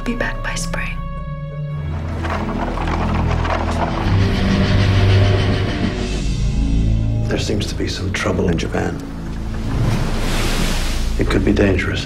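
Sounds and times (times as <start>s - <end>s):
held low orchestral notes: 0.0s - 12.0s.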